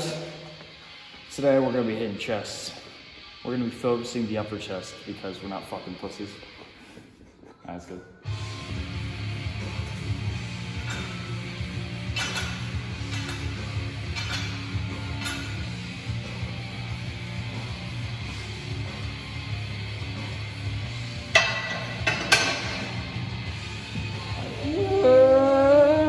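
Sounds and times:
background music with bass line: 8.2s - 26.0s.

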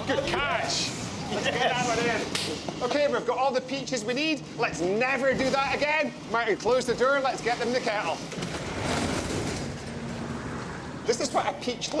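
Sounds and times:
roll-up door rattling down: 8.3s - 10.2s.

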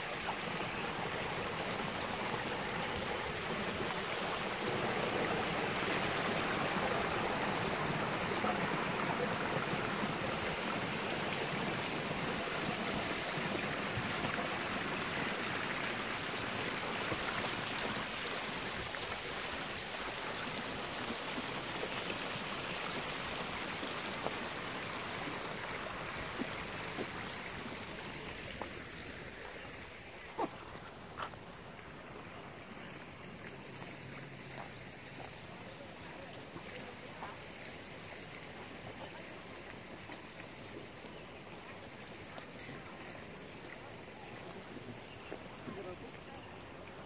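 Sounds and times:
water spilling over small weirs: 0.0s - 30.2s.

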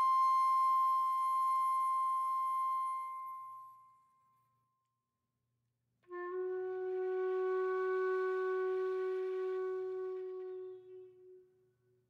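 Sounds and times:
flute holding high note: 0.0s - 3.7s, 6.1s - 11.6s.

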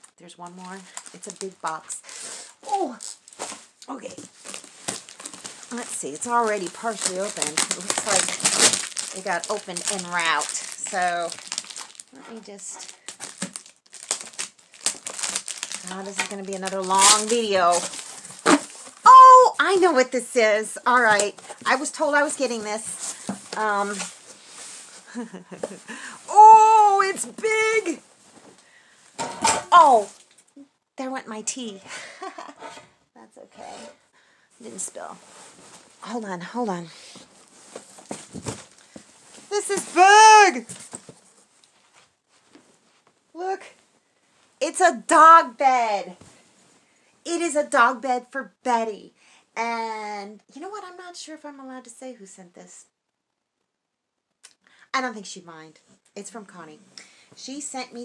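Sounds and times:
cardboard box packaging crinkling: 2.8s - 19.1s, 37.2s - 41.3s.

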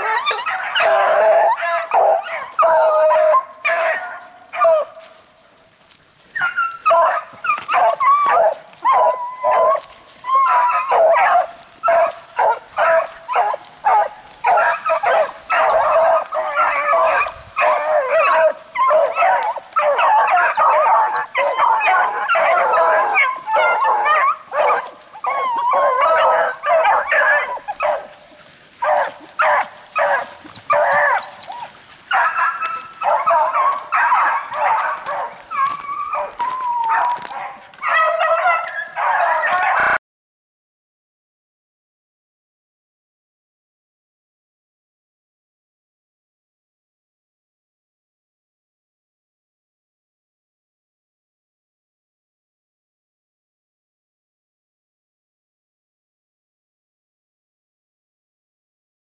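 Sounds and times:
dogs baying: 0.0s - 40.0s.

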